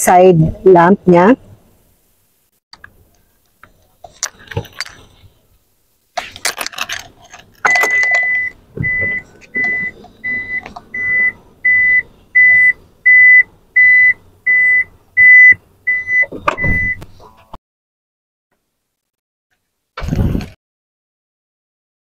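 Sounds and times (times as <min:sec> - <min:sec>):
sliding door warning beeps: 0:07.6 - 0:17.0.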